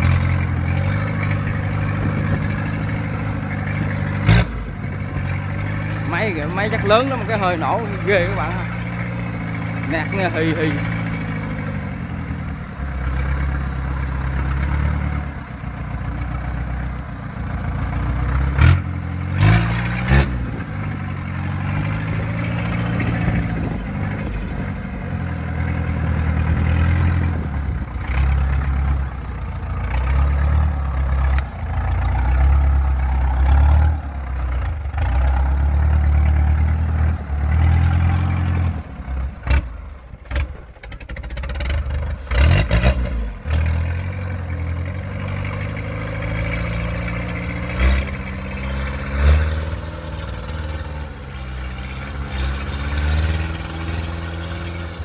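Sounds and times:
tracked carrier engine under load: 0.0s - 55.0s.

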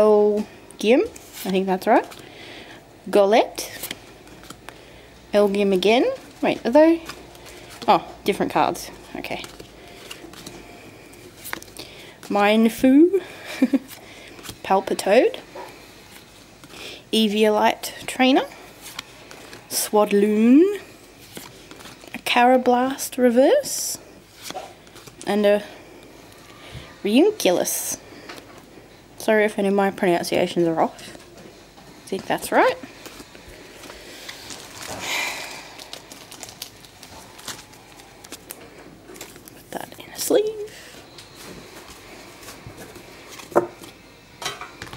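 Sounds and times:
trading cards rustling: 3.6s - 12.8s, 18.0s - 20.2s, 20.8s - 22.3s, 24.2s - 25.4s, 33.0s - 40.6s
foil pack crinkling: 33.0s - 39.7s.

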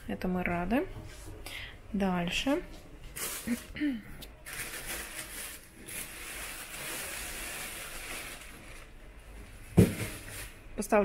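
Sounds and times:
plastic bag rustling: 2.4s - 11.0s
person humming: 3.5s - 4.2s.

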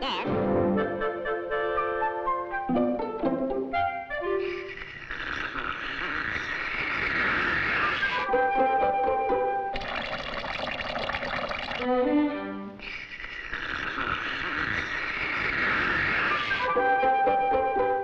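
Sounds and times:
cartoon liquid rushing through hose: 4.2s - 12.0s, 12.7s - 18.0s.

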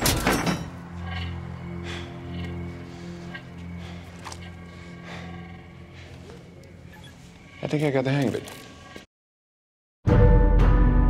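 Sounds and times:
low sustained film score: 0.2s - 9.0s.

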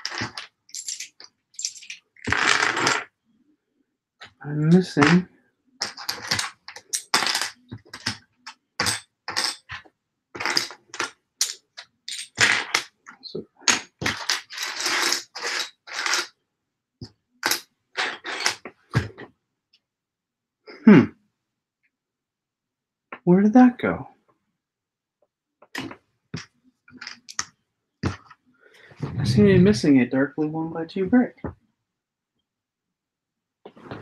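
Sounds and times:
plastic pieces clattering on table: 0.0s - 3.1s, 5.8s - 13.0s, 13.7s - 16.3s, 25.8s - 28.3s
rustling of plastic pieces: 0.0s - 3.1s
person humming: 20.7s - 21.1s.

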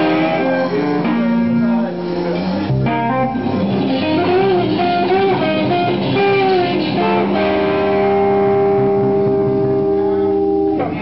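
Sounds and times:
electric guitars ringing: 0.0s - 11.0s.

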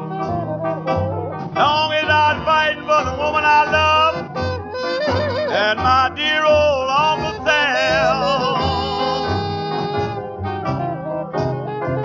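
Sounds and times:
jump blues band playing: 0.0s - 12.0s
person singing: 1.6s - 10.0s
wavering horn melody: 3.2s - 6.4s, 7.0s - 11.0s.

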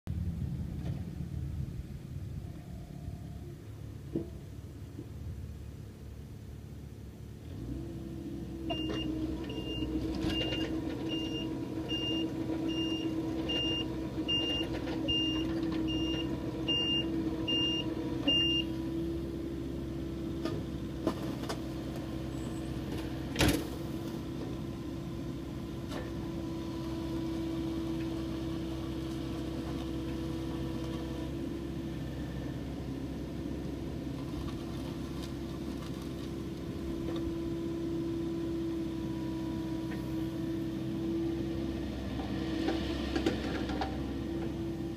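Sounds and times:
diesel excavator engine running: 0.1s - 44.9s.

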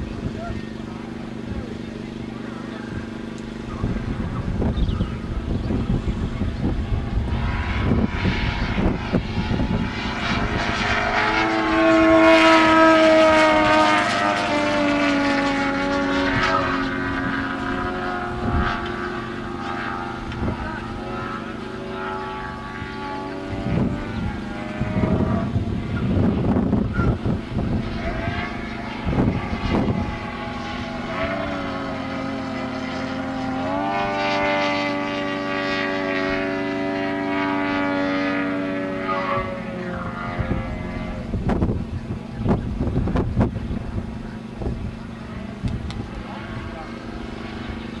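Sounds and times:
model plane engine in flight: 0.0s - 48.0s.

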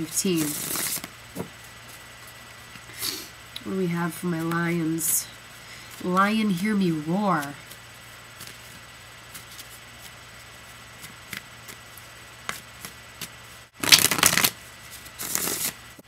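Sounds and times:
cards being shuffled: 0.1s - 2.1s, 7.4s - 15.8s
rapid card flicking: 0.4s - 1.6s, 10.9s - 15.8s.

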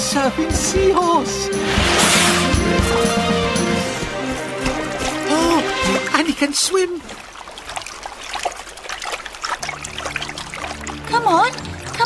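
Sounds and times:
water splashing and trickling: 0.0s - 12.0s.

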